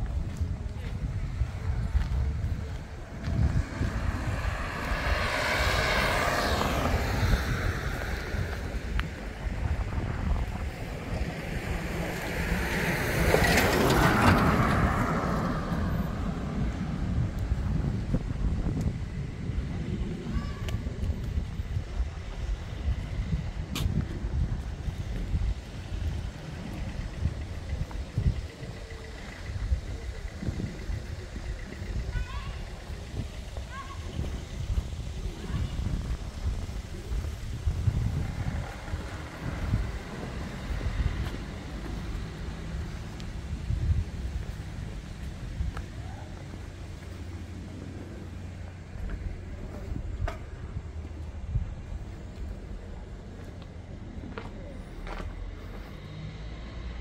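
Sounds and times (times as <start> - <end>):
wind buffeting microphone: 0.0 - 55.8
vehicle passing by: 0.9 - 57.0.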